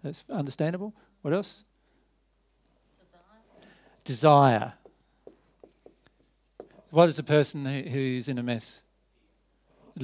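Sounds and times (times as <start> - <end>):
person speaking: 4.0 - 7.9
marker pen writing on whiteboard: 4.2 - 7.3.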